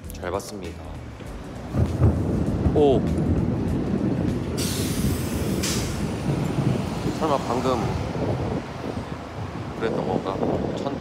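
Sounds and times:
city street traffic: 0:00.0 - 0:11.0
distant thunder rumbling: 0:01.4 - 0:11.0
short hiss: 0:04.6 - 0:06.0.

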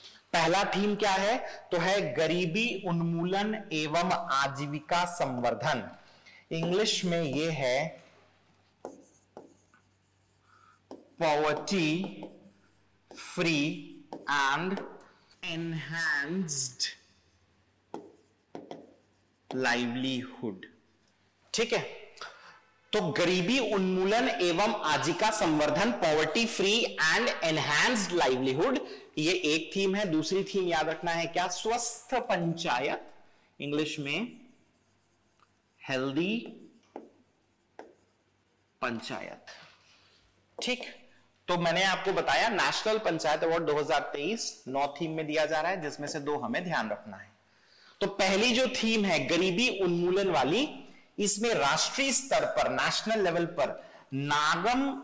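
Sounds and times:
stylus tapping on screen: 0:06.6 - 0:07.6, 0:08.8 - 0:09.9, 0:10.8 - 0:13.4, 0:14.0 - 0:15.1, 0:17.9 - 0:19.7, 0:36.4 - 0:38.2.

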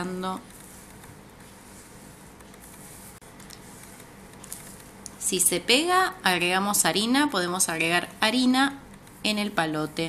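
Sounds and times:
rolling pin rubbing over dough: 0:00.0 - 0:10.0.

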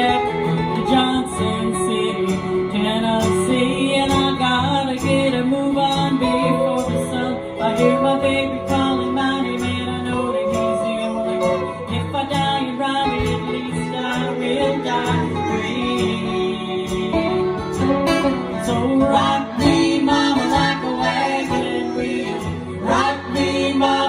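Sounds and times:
acoustic guitars strummed: 0:00.0 - 0:24.0
person singing: 0:00.0 - 0:24.0.

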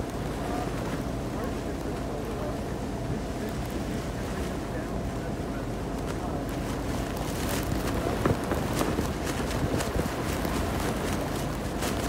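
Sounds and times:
wind buffeting microphone: 0:06.4 - 0:12.0.

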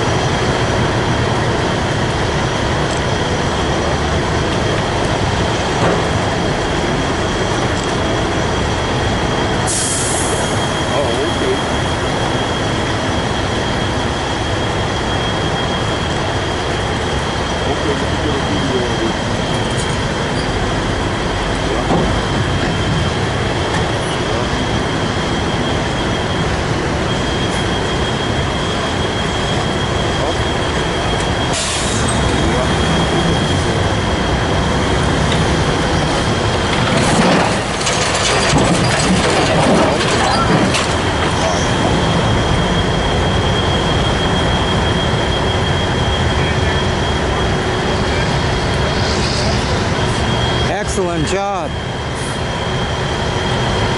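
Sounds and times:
diesel engine running under load: 0:00.0 - 0:53.9
steady high whine: 0:00.0 - 0:53.9
metal knocking and creaking: 0:36.7 - 0:42.0.

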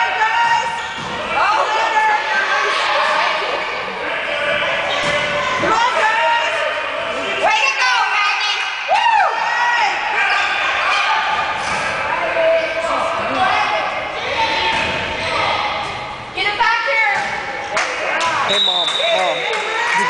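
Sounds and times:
voices and shouts echoing: 0:00.0 - 0:20.0.

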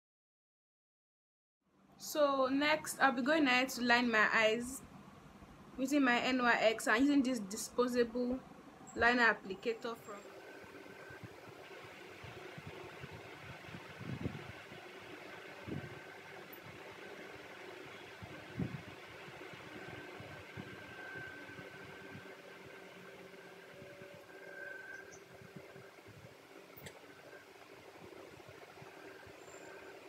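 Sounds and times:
steady background hum: 0:01.8 - 0:30.0
faint high whine: 0:02.0 - 0:30.0.

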